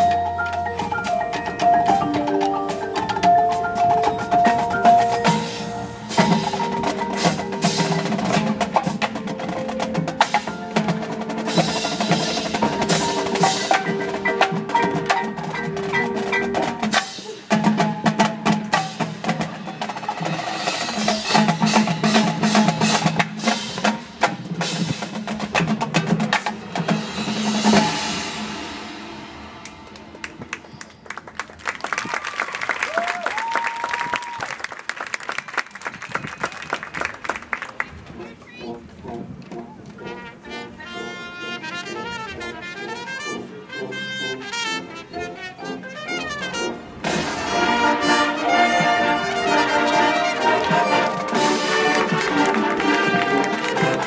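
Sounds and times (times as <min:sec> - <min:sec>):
marching band playing: 0:00.0 - 0:32.1, 0:35.5 - 0:54.0
crowd applauding and cheering: 0:29.9 - 0:38.0, 0:49.4 - 0:54.0
snare drum rolls: 0:47.0 - 0:54.0.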